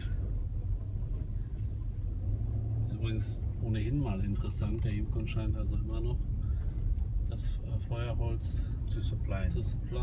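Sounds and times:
car cabin engine and road rumble: 0:00.0 - 0:10.0.

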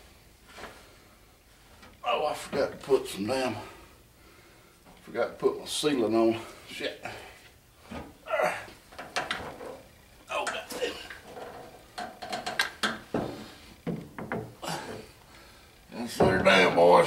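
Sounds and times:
metal knocks and scrapes: 0:16.1 - 0:16.9.

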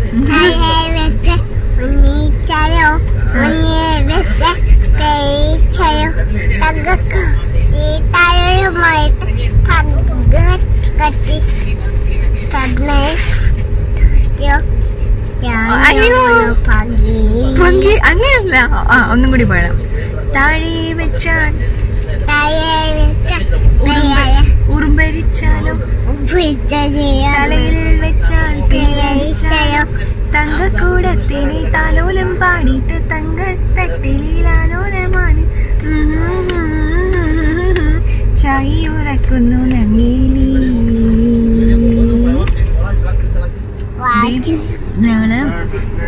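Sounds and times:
train carriage rumble: 0:00.0 - 0:46.0
person sing-song voice: 0:30.4 - 0:42.5.

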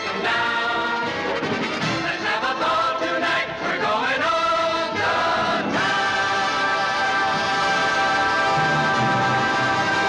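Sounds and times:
choir singing long notes: 0:00.0 - 0:10.0.

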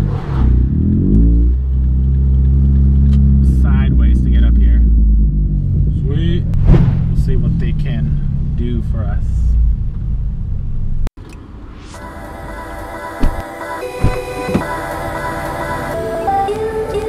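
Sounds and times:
car engine and exhaust droning: 0:00.0 - 0:16.4.

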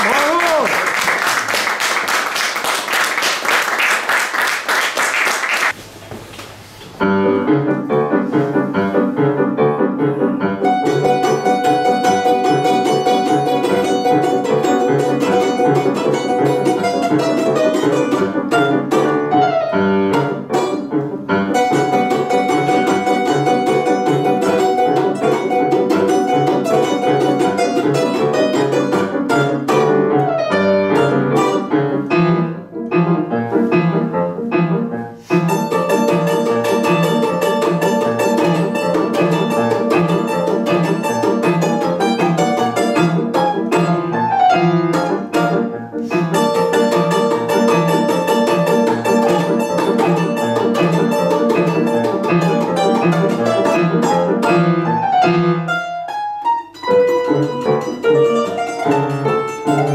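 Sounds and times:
grand piano accompaniment: 0:06.9 - 0:59.9
balalaika rapid strumming: 0:10.6 - 0:33.8, 0:35.2 - 0:59.9.

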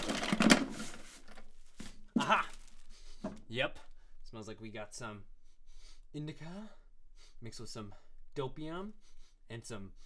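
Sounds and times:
hands rummaging in drawer: 0:00.0 - 0:01.9.

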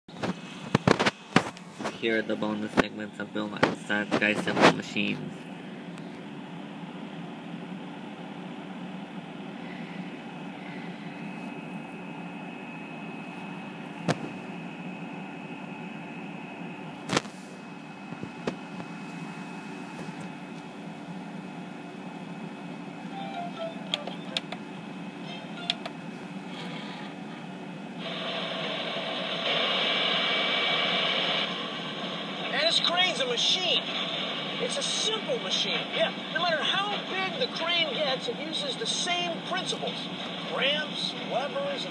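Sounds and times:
background hum and hiss: 0:00.1 - 0:41.9
faint high whine: 0:00.2 - 0:41.9
rushing noise: 0:28.0 - 0:37.4.

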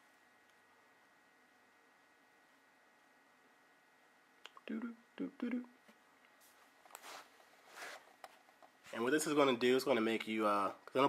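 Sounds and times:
faint room tone: 0:00.0 - 0:11.0.

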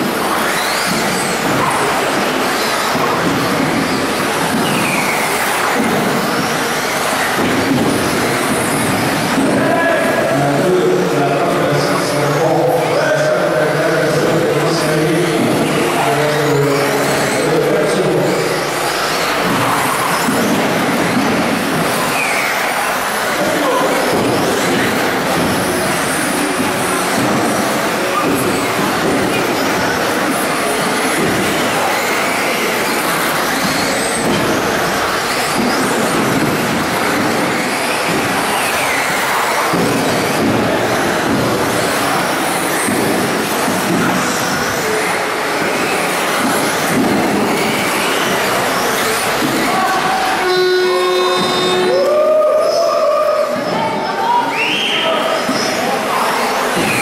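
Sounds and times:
rc car motors whining: 0:14.9 - 0:52.0.

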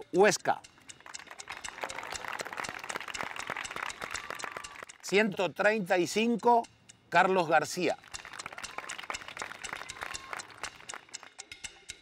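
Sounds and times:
children clapping: 0:00.9 - 0:05.0, 0:08.0 - 0:11.3.

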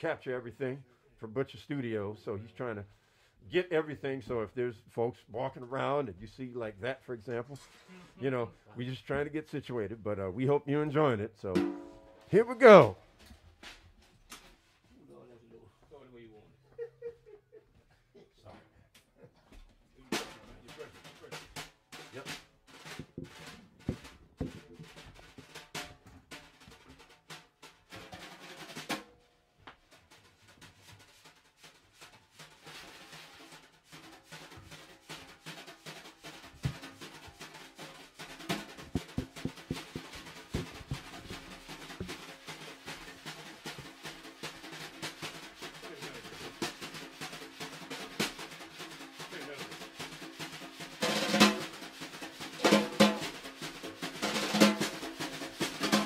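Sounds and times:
snare drums played with brushes: 0:10.9 - 0:13.0, 0:20.0 - 0:56.0.

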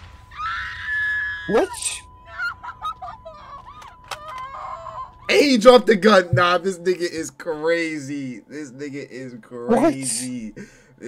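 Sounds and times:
high scream: 0:00.3 - 0:02.7
high-pitched ringing tone: 0:01.5 - 0:08.4.

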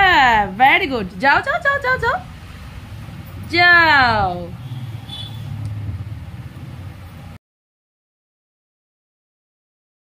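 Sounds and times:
low steady rumble: 0:00.0 - 0:07.4.

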